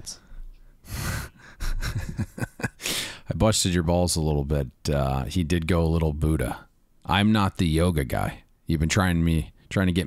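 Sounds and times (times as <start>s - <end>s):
man gasping breath: 0.2s - 1.9s, 2.8s - 3.3s
man laughing breathily: 0.8s - 3.2s.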